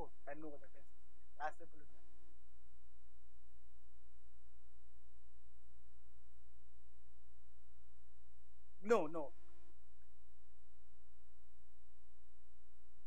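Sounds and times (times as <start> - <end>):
constant mid-pitched tone: 0.0 - 13.0.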